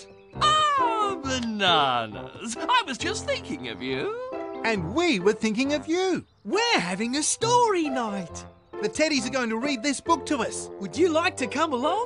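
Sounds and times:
light background music: 0.0 - 12.0
cartoon character calling: 0.4 - 2.3.

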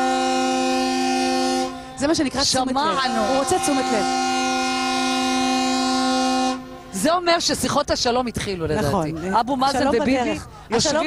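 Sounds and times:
boat horn blast: 0.0 - 7.4.

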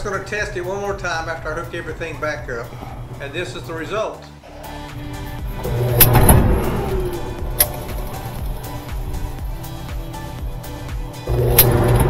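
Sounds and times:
dryer motor humming: 0.0 - 3.9, 4.9 - 12.0
sharp click: 5.7 - 6.5, 11.6 - 12.0.

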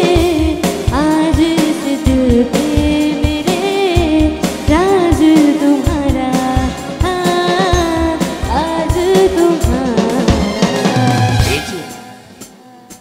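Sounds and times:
woman singing through pa: 0.0 - 11.9, 12.5 - 13.0
band playing: 0.0 - 12.6
steady drum beat: 0.0 - 13.0.

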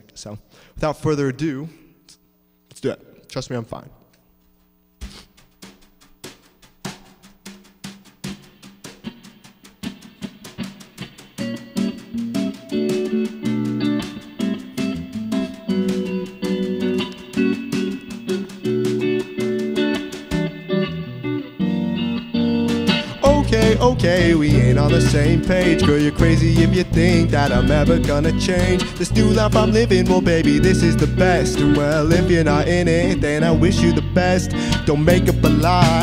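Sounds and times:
ticking beats: 4.9 - 20.9, 22.7 - 36.0
live band playing pop: 5.0 - 36.0
electric guitar: 8.3 - 36.0.

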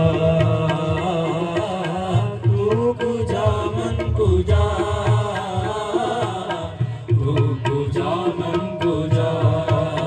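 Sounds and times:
harmonium: 0.0 - 10.0
tabla strokes: 0.0 - 10.0.

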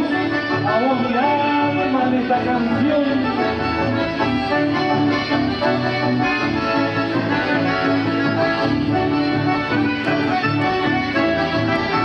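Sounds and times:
accordion dance music: 0.0 - 12.0.

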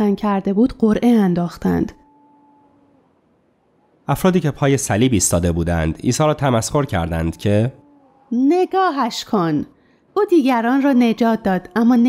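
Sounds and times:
faint held tones: 1.5 - 4.1, 5.9 - 10.0.

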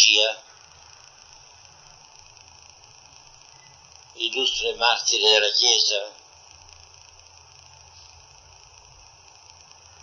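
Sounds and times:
faint low hum and hiss: 0.0 - 10.0.

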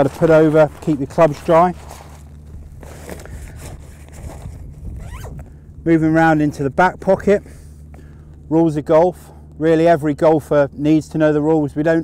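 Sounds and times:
fabric rustling: 0.0 - 5.3
zip being pulled: 1.7 - 5.4.

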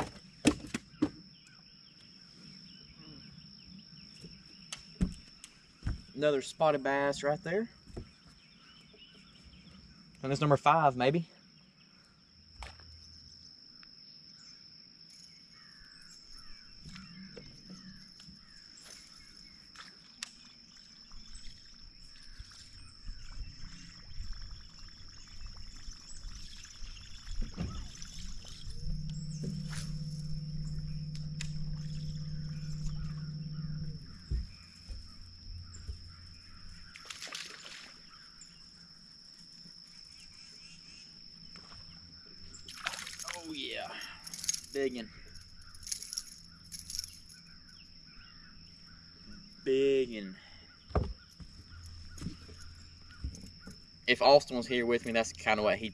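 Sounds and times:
low motor hum: 16.4 - 39.0, 44.1 - 49.6, 51.0 - 55.9
high-pitched whine: 22.2 - 38.6, 44.2 - 49.9
water sloshing: 24.8 - 38.6, 42.6 - 43.6
man speaking: 43.3 - 45.1, 49.7 - 50.4, 54.1 - 55.9.

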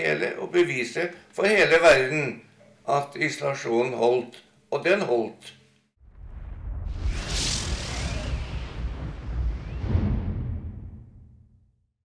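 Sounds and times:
deep continuous rumble: 6.0 - 11.4
hissing swoosh: 6.1 - 11.3.

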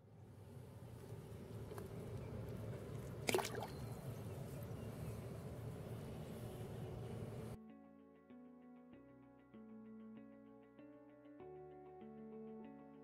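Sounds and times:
outdoor background noise: 0.0 - 7.6
fish splashing into water: 3.2 - 4.0
guitar music: 7.5 - 13.0.

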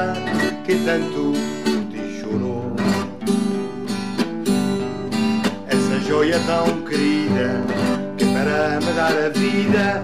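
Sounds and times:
person singing: 0.0 - 3.3, 5.6 - 10.0
acoustic guitar strumming chords: 0.0 - 10.0.

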